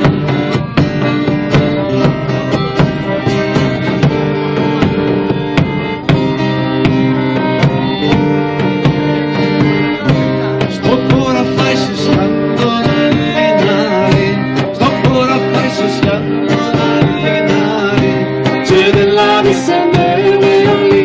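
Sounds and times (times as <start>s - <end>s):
acoustic guitars strummed: 0.0s - 21.0s
button accordion: 0.0s - 21.0s
drum beating steady time: 0.0s - 21.0s.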